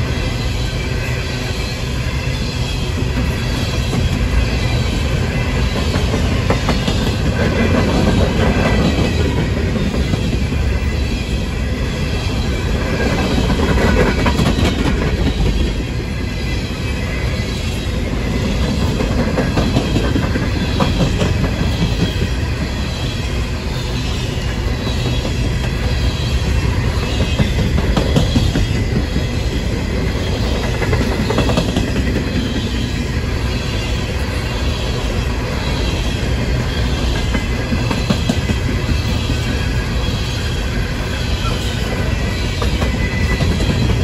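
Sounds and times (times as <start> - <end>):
train wheels rumbling on rails: 0.0 - 44.0.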